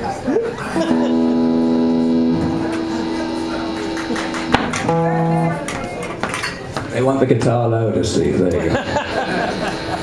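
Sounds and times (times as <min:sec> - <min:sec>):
amplified electric guitar: 0:00.7 - 0:06.3.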